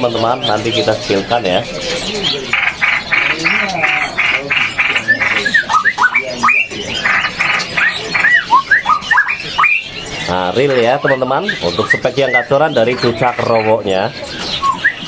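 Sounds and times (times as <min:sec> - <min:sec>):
harsh buzzy bird notes: 0:00.0 - 0:15.0
bird whistles: 0:04.7 - 0:13.7, 0:14.3 - 0:15.0.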